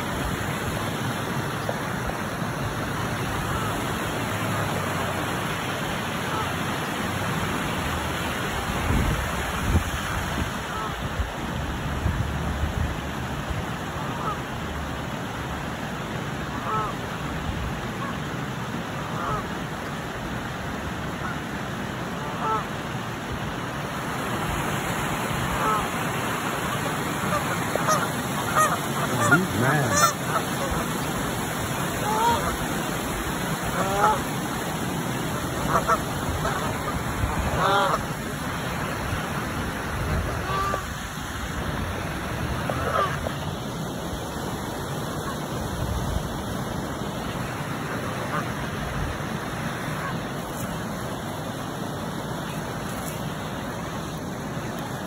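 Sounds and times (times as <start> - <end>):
geese honking: 6.2 - 6.5, 14.0 - 14.4, 16.5 - 17.0, 19.1 - 19.5, 22.2 - 22.7, 25.4 - 39.1, 40.1 - 41.2, 42.6 - 43.4, 45.1 - 45.5, 47.2 - 48.6, 49.8 - 50.8.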